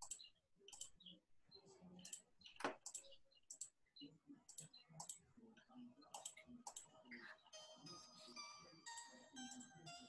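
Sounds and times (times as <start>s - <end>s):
faint computer mouse clicks: 0.0s - 1.0s, 2.0s - 3.7s, 4.5s - 5.2s, 6.1s - 6.9s
music with held tones: 7.2s - 10.0s.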